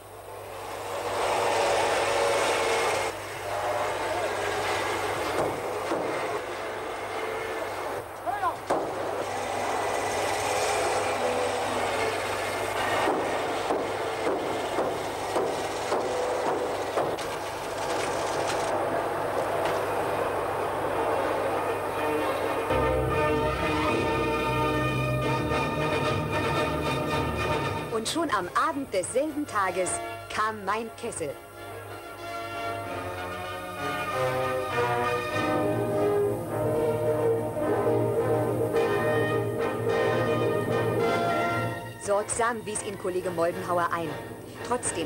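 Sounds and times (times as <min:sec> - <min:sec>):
sharp knocks: 0:05.2 - 0:06.4, 0:08.5 - 0:09.1, 0:12.7 - 0:18.6.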